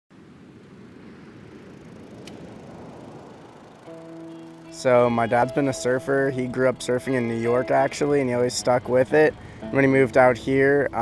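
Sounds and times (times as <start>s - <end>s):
low rumbling noise: 0.1s - 11.0s
guitar note: 3.8s - 11.0s.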